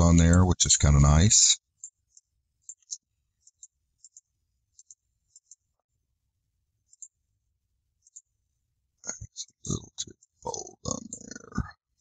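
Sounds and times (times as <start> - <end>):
faint computer mouse clicks: 1.8 - 5.7.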